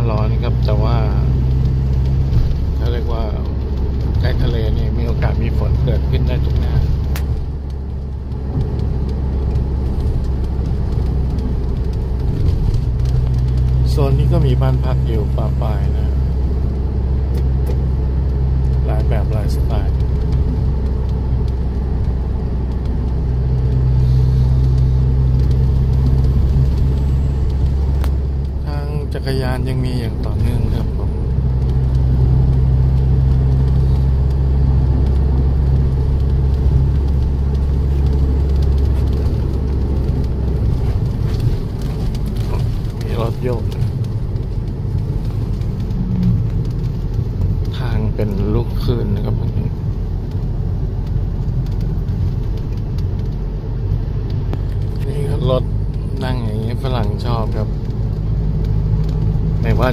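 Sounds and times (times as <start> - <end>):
car engine drone: 0.0 - 59.9
tyres on road: 0.0 - 59.9.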